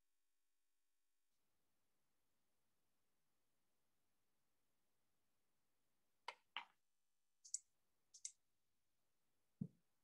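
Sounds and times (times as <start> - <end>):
computer mouse clicking: 7.4 - 8.4.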